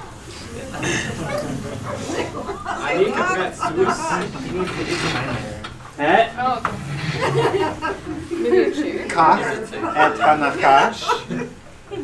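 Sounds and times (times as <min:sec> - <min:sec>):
people talking: 0:00.1 - 0:12.0.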